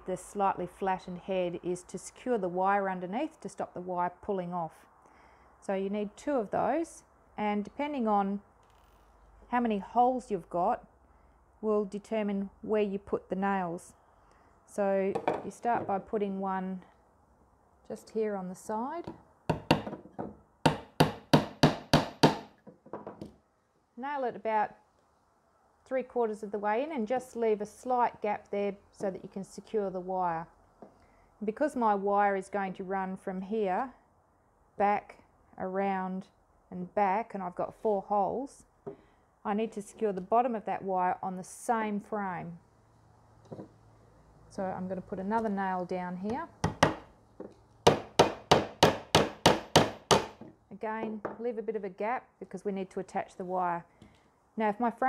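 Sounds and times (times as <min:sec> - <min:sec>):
hammer striking nail into wood: 0:19.5 - 0:23.3, 0:46.6 - 0:47.1, 0:47.9 - 0:50.5.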